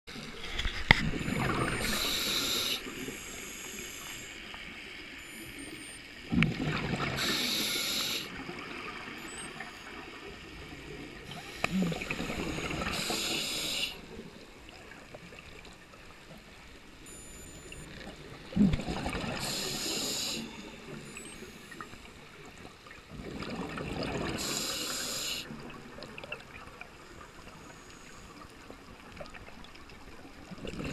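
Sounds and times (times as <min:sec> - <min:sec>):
diver breathing through regulator: 0:00.3 - 0:04.3, 0:07.2 - 0:08.3, 0:11.3 - 0:14.1, 0:19.3 - 0:20.9, 0:24.4 - 0:25.5
bubbles gurgling underwater: 0:06.3 - 0:07.2, 0:18.5 - 0:19.4, 0:23.1 - 0:24.4.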